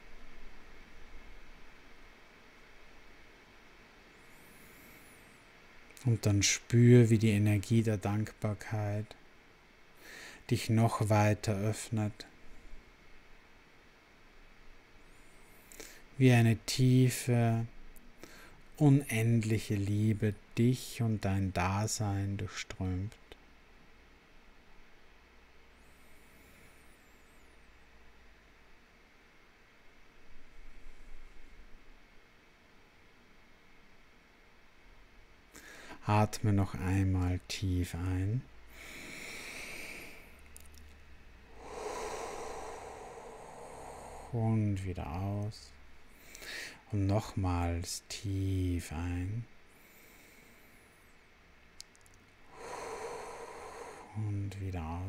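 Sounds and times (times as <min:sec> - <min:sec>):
faint low hum: 0:00.0 - 0:55.0
man breathing deeply: 0:10.0 - 0:10.5, 0:18.2 - 0:18.6, 0:35.5 - 0:36.0, 0:38.6 - 0:40.5, 0:41.4 - 0:44.8, 0:45.7 - 0:46.9, 0:49.7 - 0:51.1, 0:52.4 - 0:54.7.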